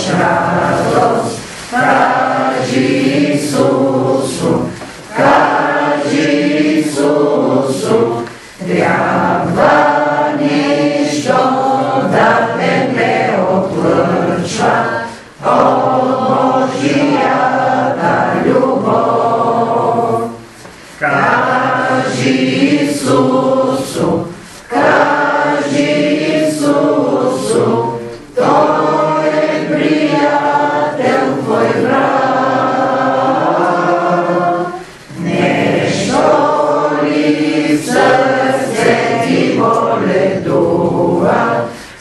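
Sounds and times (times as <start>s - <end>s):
group singing a hymn: 0.0s - 42.0s.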